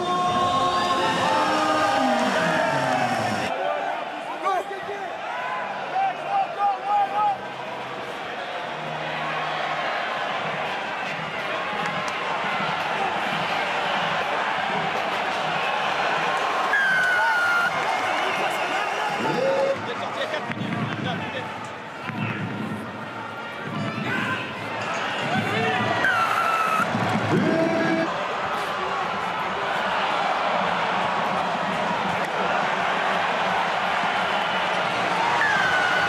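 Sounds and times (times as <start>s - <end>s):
crowd noise with shouts: 0.0s - 36.0s.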